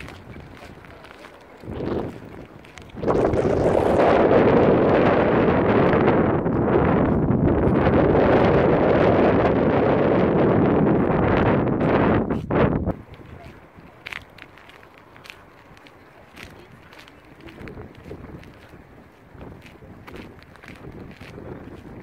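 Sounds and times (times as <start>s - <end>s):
wind on microphone: 0.0s - 22.0s.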